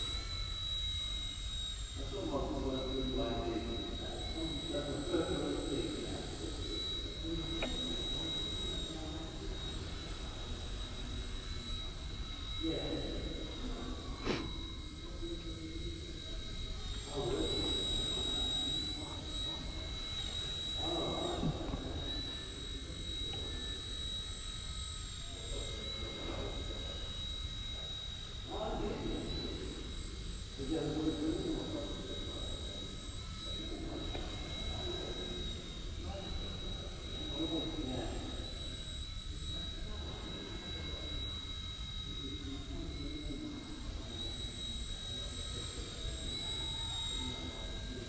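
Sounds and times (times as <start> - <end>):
toy helicopter rotor whine: 0.0 - 48.0.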